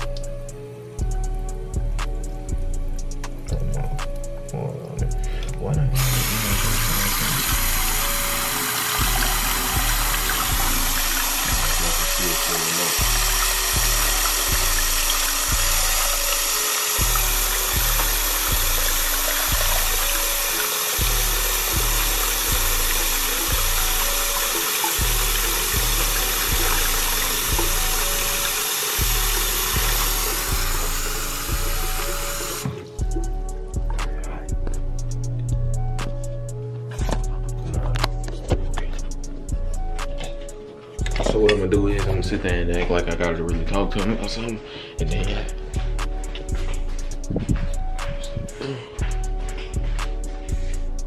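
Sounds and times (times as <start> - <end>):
music with repeating beat: 0.0 - 51.0
tap water running into sink: 5.0 - 34.0.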